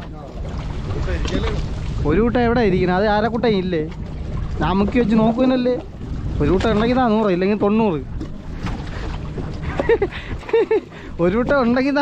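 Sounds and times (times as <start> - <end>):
boat noise: 0.0 - 12.0
sea noise: 0.0 - 12.0
wind rumbling on microphone: 0.0 - 12.0.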